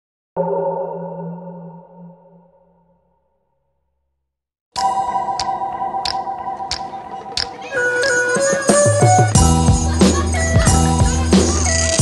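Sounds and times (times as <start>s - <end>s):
sustained electronic tone: 0.4s - 3.2s.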